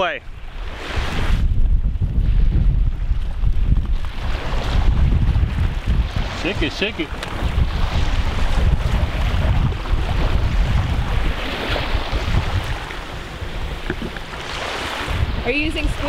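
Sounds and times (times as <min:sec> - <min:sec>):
small waves washing onto shore: 0:00.0 - 0:16.0
wind buffeting microphone: 0:00.0 - 0:16.0.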